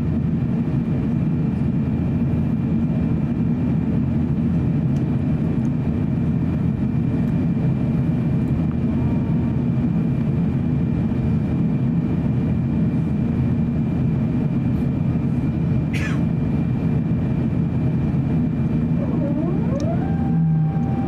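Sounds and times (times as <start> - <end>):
aircraft engines rumbling: 0.0 - 21.0
high whine: 18.4 - 21.0.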